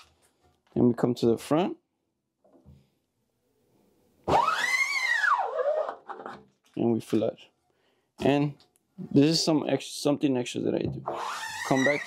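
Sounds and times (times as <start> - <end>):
scoop coater squealing on mesh: 4.3 - 6.0, 11.1 - 12.0.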